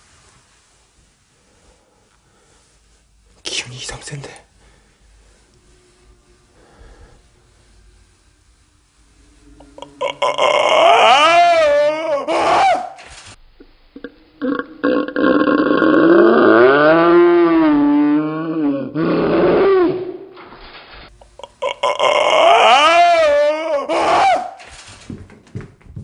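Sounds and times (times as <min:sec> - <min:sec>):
person moaning: 0:09.5 - 0:13.0, 0:14.0 - 0:20.0, 0:21.4 - 0:24.5.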